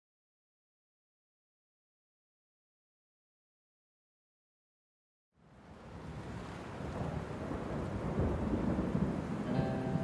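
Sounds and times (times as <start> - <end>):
low rumbling music noise: 9.5 - 10.0.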